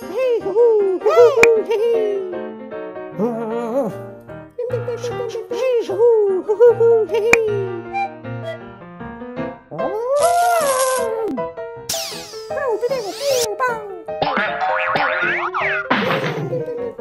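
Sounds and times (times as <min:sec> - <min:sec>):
cartoon background music: 0:00.0 - 0:17.0.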